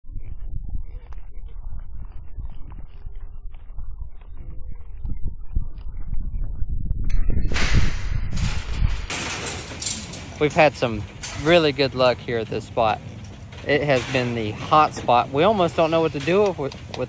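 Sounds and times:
low rumble: 0.0s - 17.0s.

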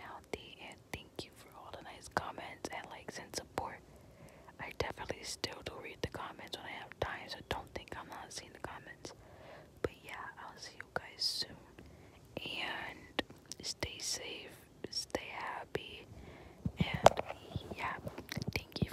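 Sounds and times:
person whispering: 0.0s - 3.8s, 4.6s - 9.1s, 9.8s - 16.1s, 16.7s - 18.9s.

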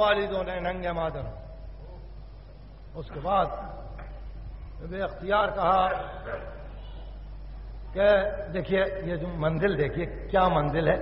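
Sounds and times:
low mains hum: 0.0s - 11.0s
tape hiss: 0.0s - 11.0s.

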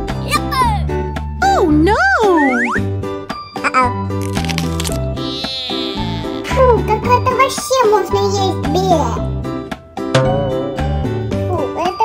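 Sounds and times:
children's music with bass line: 0.0s - 4.2s, 5.1s - 12.0s
cartoon boing pitch glides: 10.2s - 11.2s.

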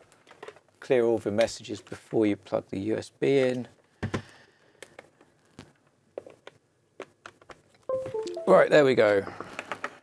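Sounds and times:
short electronic beep: 7.9s - 8.8s.

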